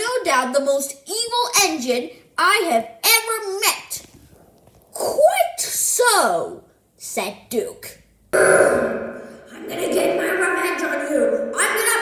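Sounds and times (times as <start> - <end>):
person making rough throat sound: 8.4 - 11.6
voice sound: 8.4 - 12.0.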